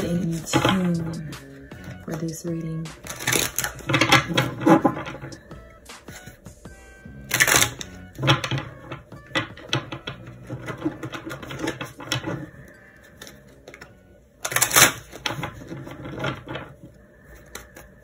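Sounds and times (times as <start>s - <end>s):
soft background music: 0.0s - 18.0s
cards being shuffled: 2.9s - 6.5s, 7.2s - 18.0s.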